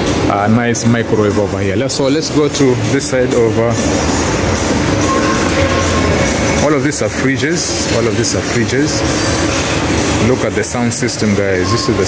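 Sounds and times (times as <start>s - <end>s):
faint background music: 0.0s - 12.0s
shop din with low hum: 0.0s - 12.0s.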